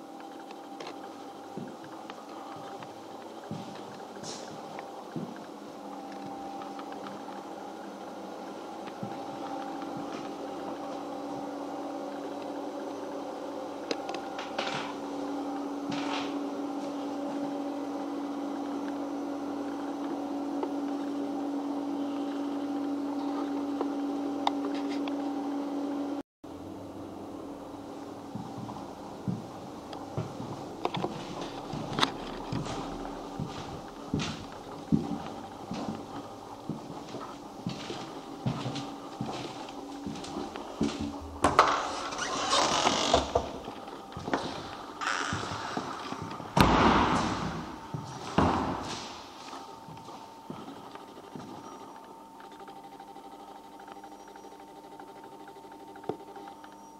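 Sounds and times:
machine hum with low tone: 0.0 - 56.9
loud thump: 46.6 - 47.6.

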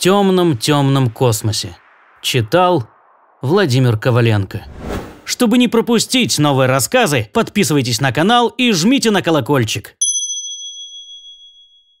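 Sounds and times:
high bell ding: 10.0 - 12.0.

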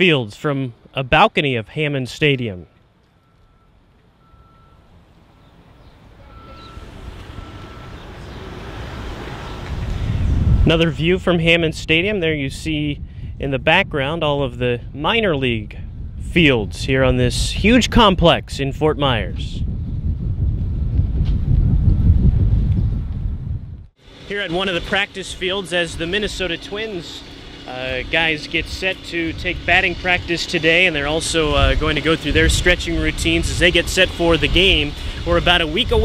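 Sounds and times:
low outdoor rumble: 0.0 - 36.0
reversing alarm beeping: 3.1 - 5.0, 6.1 - 8.4
wind buffeting microphone: 6.3 - 24.0, 25.4 - 36.0.

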